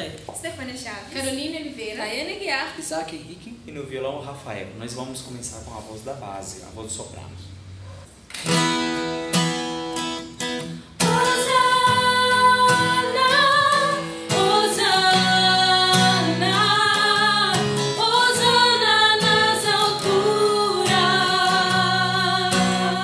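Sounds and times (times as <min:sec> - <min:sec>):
acoustic guitar strumming chords: 0:08.4 - 0:23.0
women singing in unison: 0:11.0 - 0:23.0.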